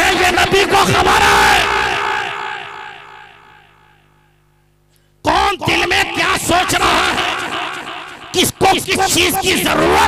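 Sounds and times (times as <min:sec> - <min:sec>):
voices over public address echoing: 0:00.0 - 0:04.4, 0:05.2 - 0:10.0
faint steady hum: 0:00.0 - 0:10.0.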